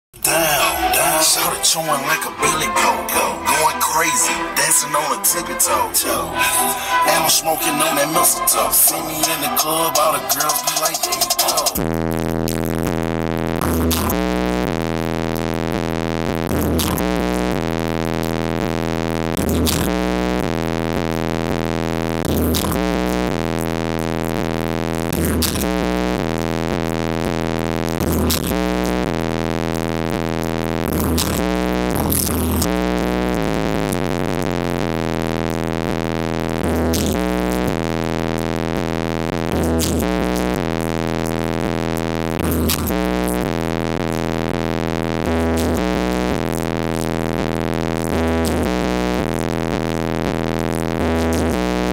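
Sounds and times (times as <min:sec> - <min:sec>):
bass-heavy electronic music: 0:00.2 - 0:51.9.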